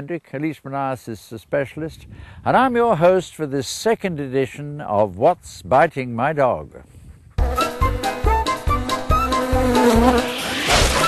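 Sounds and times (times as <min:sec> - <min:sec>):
upbeat background music: 0:07.4 - 0:11.0
cartoon insect buzz: 0:08.8 - 0:11.0.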